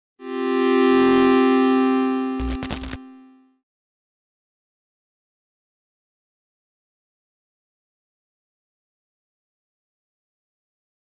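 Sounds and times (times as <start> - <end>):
buzzy synthesizer chord: 0.2 - 3.6.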